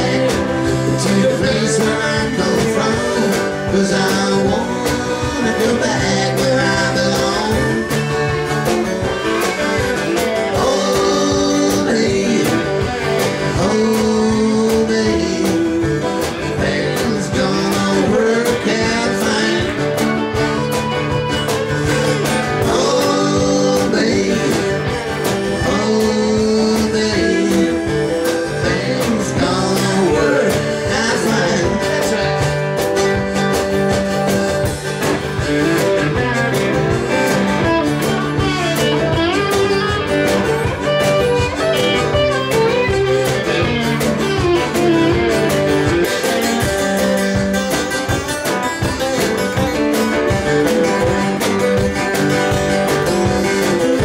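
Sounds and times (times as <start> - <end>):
country band music: 0.0 - 54.0
strummed acoustic guitars: 0.0 - 54.0.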